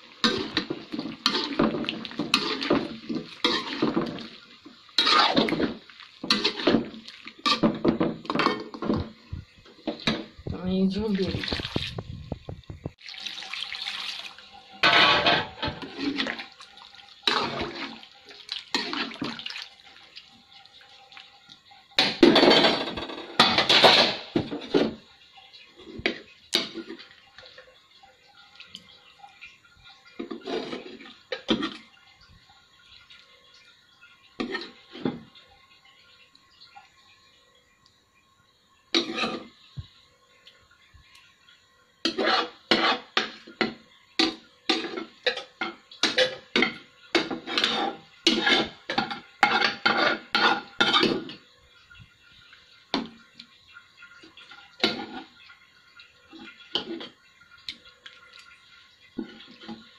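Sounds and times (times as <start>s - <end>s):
water pouring into a pot: 0.0s - 59.9s.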